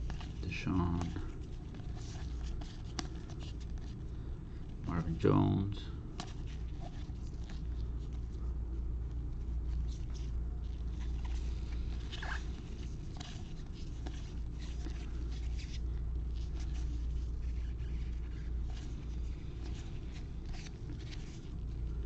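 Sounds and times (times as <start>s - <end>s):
cards clicking and rustling: 0.0s - 4.0s, 9.8s - 21.9s
low hum: 0.0s - 22.0s.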